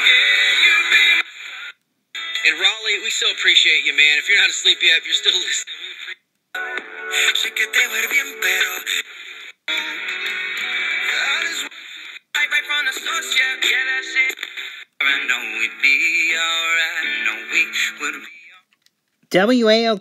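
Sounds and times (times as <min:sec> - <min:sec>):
music with singing on radio: 0:00.0 - 0:18.8.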